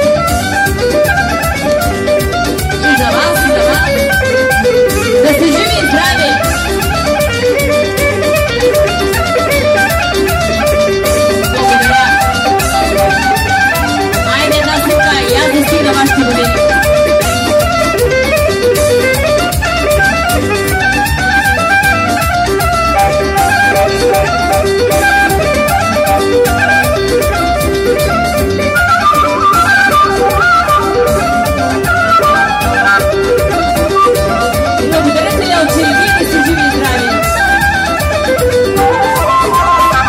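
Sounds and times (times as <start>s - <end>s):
folk dance music over loudspeakers: 0.0s - 40.0s.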